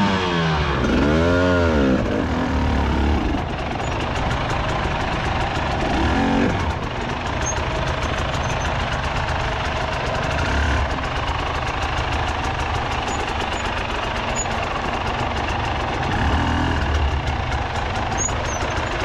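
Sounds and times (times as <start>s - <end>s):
dirt bike engine running: 0.0s - 19.0s.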